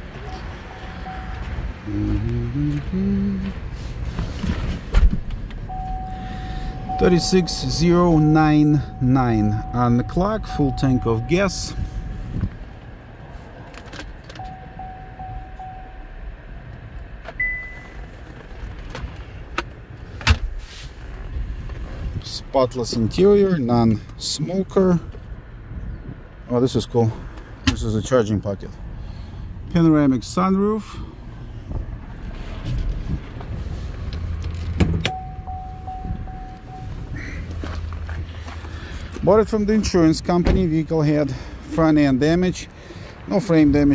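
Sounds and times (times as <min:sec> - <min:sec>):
low steady cabin hum: 0:00.0 - 0:16.7, 0:34.4 - 0:38.4
steady high tone: 0:00.2 - 0:03.5, 0:05.7 - 0:12.5, 0:14.4 - 0:16.2, 0:35.1 - 0:37.5
short high beep: 0:05.7 - 0:07.8, 0:08.8 - 0:12.3, 0:14.4 - 0:16.0, 0:17.4 - 0:18.0, 0:35.1 - 0:37.4.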